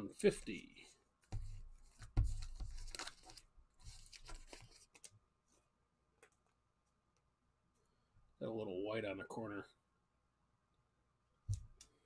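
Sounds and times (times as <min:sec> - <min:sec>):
plastic card sleeve rustling: 0:01.3 - 0:05.6.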